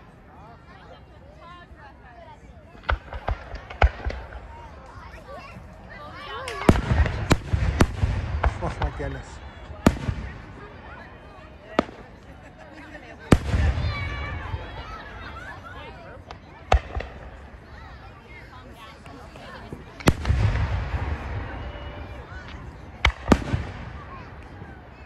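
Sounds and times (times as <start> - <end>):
onlookers' voices: 0.0 - 25.0
fireworks bangs and crackles: 2.7 - 25.0.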